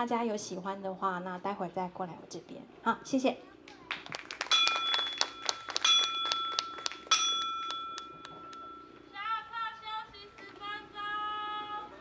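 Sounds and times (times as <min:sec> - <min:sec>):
high bell-like metal tone: 0:04.6 - 0:09.0.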